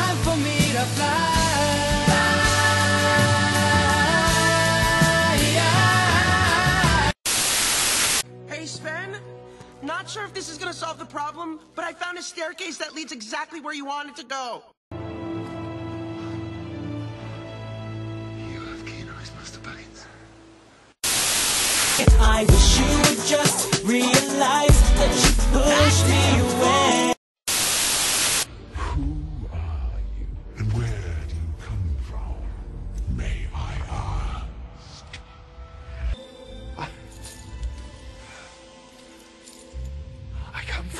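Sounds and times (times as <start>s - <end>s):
music: 0.0s - 7.2s, 8.2s - 12.8s, 14.9s - 20.7s, 22.0s - 27.2s, 28.5s - 40.9s
tv static hiss: 7.2s - 8.2s, 20.5s - 22.1s, 27.5s - 28.5s.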